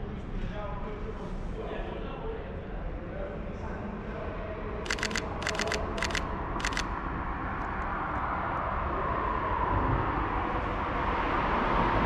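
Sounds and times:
camera shutter double clicks: 4.9 - 6.9
echoing traffic noise: 4.9 - 12.0.

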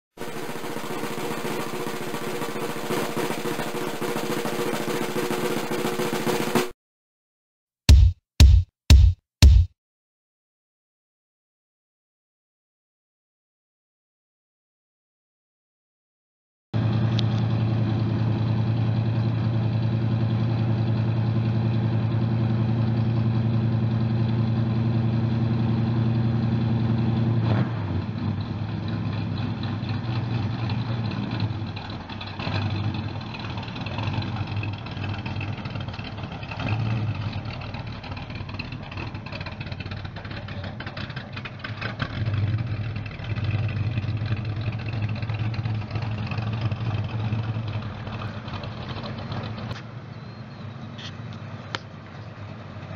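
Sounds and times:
car engine running and revving: 16.8 - 52.9.

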